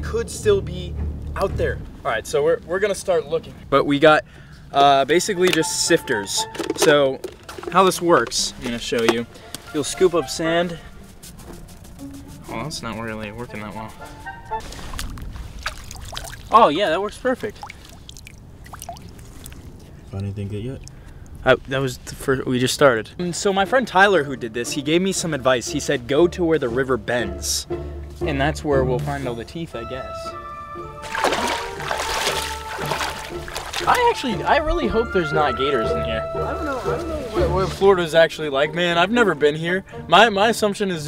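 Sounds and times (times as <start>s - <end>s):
background music: 0.0s - 15.2s, 22.8s - 41.0s
water sloshing and splashing: 6.5s - 9.3s, 14.6s - 20.0s, 31.0s - 34.2s
splashy knocks: 14.7s - 16.5s, 31.0s - 34.1s.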